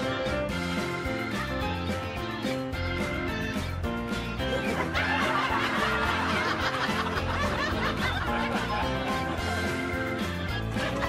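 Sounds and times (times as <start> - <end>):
light comedic background music: 0.0 - 11.0
canned laugh track: 4.4 - 11.0.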